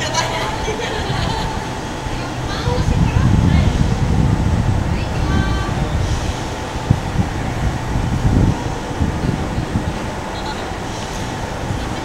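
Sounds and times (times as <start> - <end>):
passing traffic rumble: 0.0 - 12.0
wind buffeting microphone: 0.0 - 12.0.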